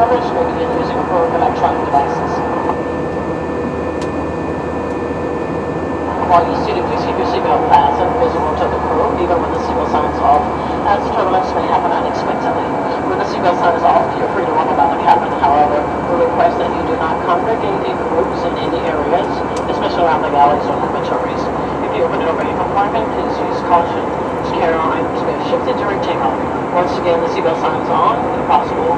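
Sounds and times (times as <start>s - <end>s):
indistinct voices talking: 0.0s - 2.8s, 6.1s - 28.9s
jet engine cabin noise: 0.0s - 28.9s.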